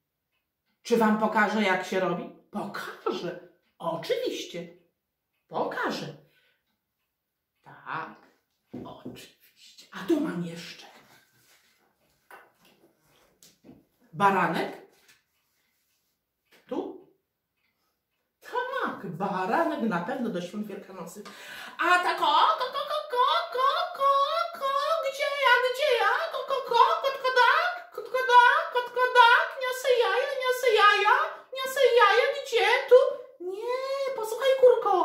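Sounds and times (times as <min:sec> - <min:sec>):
faint handling sounds: 0:10.6 - 0:14.1, 0:14.8 - 0:16.6.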